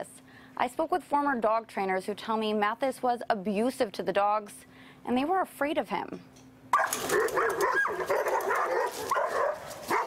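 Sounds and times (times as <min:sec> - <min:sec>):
dogs barking: 0:06.7 - 0:10.0.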